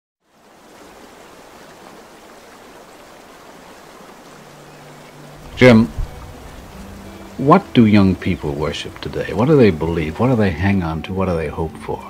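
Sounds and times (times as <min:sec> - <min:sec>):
creek water rushing over rocks: 0:00.2 - 0:11.5.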